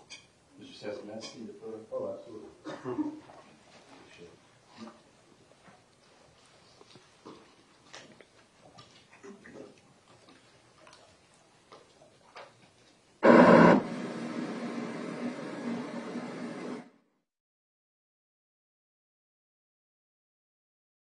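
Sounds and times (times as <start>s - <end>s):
small rustles and clicks: 3.2s - 13.0s
static hiss with hum: 13.1s - 17.1s
loud burst of noise: 13.2s - 17.0s.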